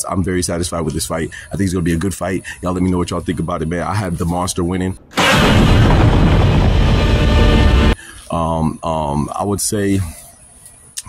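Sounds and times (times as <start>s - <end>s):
loud film soundtrack: 5.1s - 8.0s
monster roaring: 5.2s - 8.0s.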